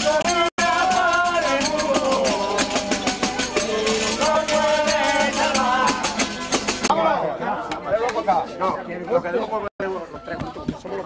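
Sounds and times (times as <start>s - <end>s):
person singing: 0.0s - 6.4s
rattling percussion beat: 0.0s - 6.9s
crowd voices: 0.0s - 11.0s.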